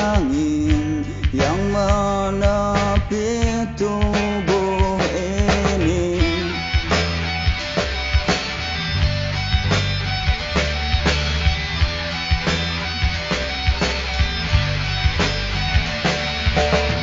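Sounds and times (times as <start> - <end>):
bass line: 0.0 - 17.0
drum hits: 0.0 - 17.0
plucked guitar: 0.0 - 17.0.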